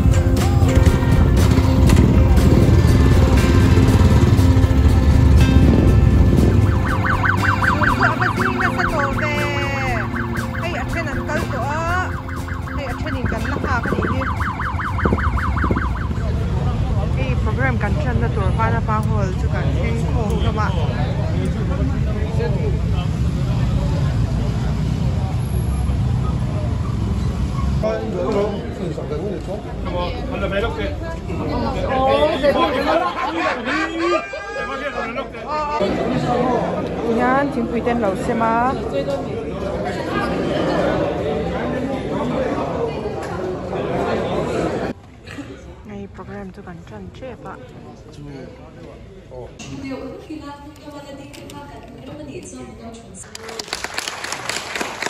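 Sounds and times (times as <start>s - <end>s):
motorcycle engines rumbling: 0.0s - 33.2s
warbling siren-like tone: 6.5s - 16.4s
people talking: 7.6s - 12.1s, 12.7s - 14.5s, 16.1s - 23.1s.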